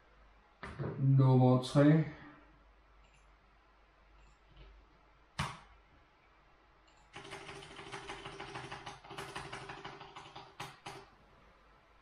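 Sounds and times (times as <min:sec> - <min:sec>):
rapid printer ticking: 0:07.2 - 0:11.0.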